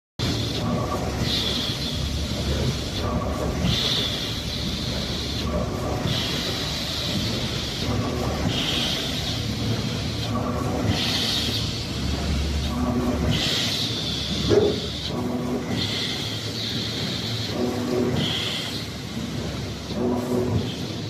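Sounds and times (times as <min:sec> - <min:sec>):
machine hissing: 0:00.2 - 0:21.0
machine rumbling: 0:00.2 - 0:21.0.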